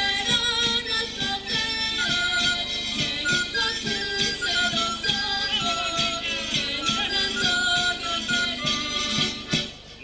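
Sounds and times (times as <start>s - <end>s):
folk dance music: 0.0s - 10.0s.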